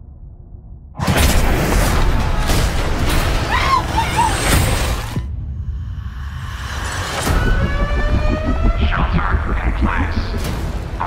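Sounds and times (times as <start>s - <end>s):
deep rumble: 5.2s - 11.0s
rapid low pulsing: 6.3s - 11.0s
rising siren-like tone: 6.7s - 10.4s.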